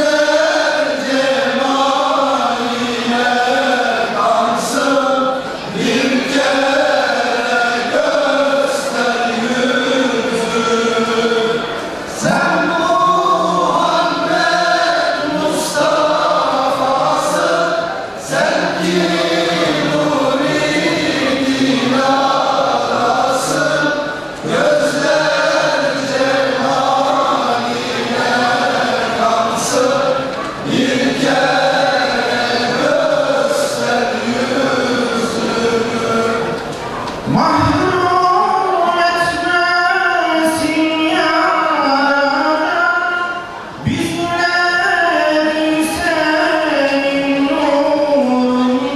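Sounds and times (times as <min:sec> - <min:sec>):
men's choir singing a hymn: 0:00.0 - 0:48.9
singer on a microphone: 0:00.0 - 0:48.9.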